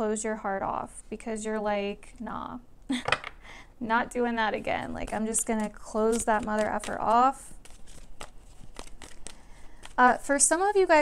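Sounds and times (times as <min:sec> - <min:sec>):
cards being shuffled: 0:05.0 - 0:10.5.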